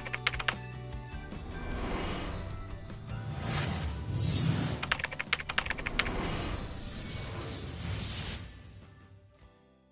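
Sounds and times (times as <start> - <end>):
keyboard typing clicks: 0.0 - 0.6, 4.8 - 6.2
soft background music: 0.0 - 9.9.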